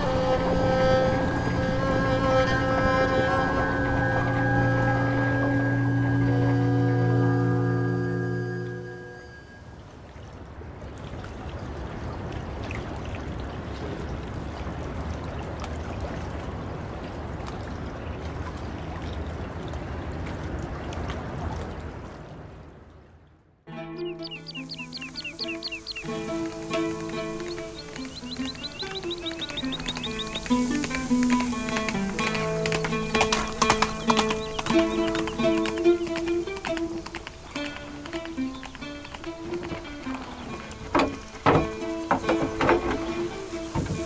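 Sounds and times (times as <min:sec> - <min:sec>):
instrumental music: 0:00.0 - 0:10.1, 0:23.7 - 0:44.0
river water flowing: 0:00.0 - 0:44.0.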